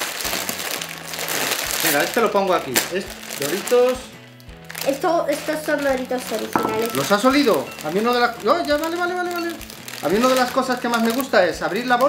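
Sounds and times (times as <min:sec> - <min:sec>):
crisp bag pulled open: 0:00.0 - 0:04.0
plastic crisp bags crinkling: 0:00.0 - 0:04.1, 0:04.7 - 0:12.0.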